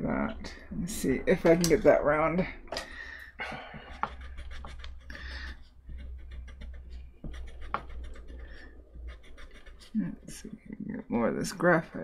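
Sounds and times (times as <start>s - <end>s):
low steady hum: 0.0s - 12.0s
eraser scrubbing on wood: 3.9s - 10.5s.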